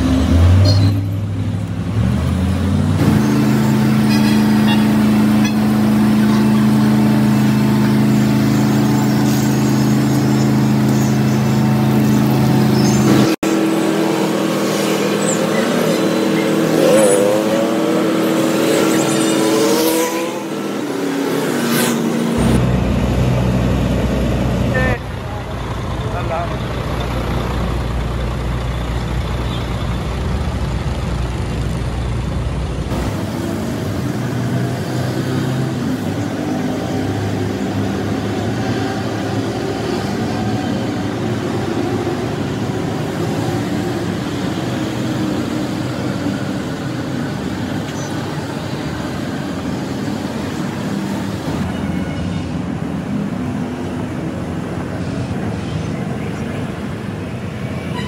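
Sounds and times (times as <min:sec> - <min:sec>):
heavy diesel engines running: 0:00.0 - 0:58.0.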